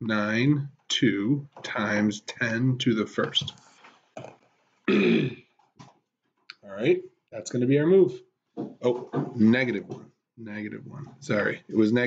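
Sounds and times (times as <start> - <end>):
man clearing his throat: 4.9 - 5.4.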